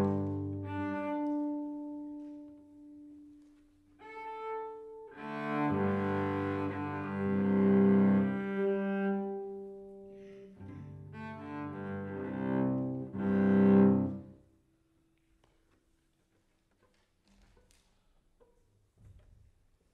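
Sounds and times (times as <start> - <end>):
bowed cello: 0.0 - 14.6.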